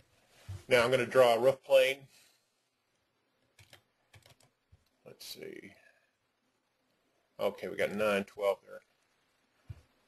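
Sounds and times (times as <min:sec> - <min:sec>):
computer mouse clicks: 0:03.5 - 0:05.0.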